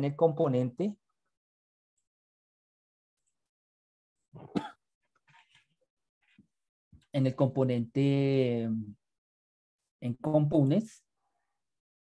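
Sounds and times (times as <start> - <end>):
person coughing: 4.4 - 4.8.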